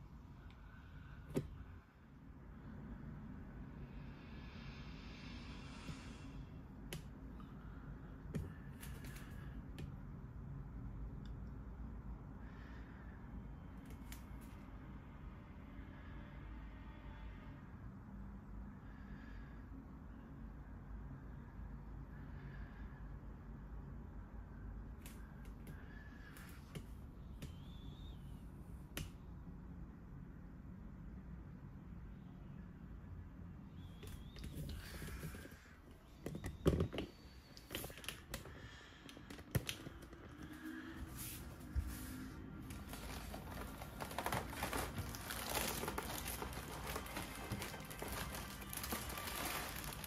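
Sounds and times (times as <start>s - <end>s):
faint room noise: 0.0s - 50.0s
low background rumble: 0.0s - 50.0s
faint high whistling tone: 27.2s - 28.7s, 32.1s - 38.2s.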